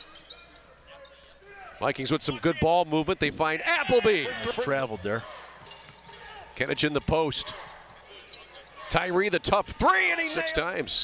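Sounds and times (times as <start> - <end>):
man commentating: 1.5 - 5.3, 8.9 - 11.0.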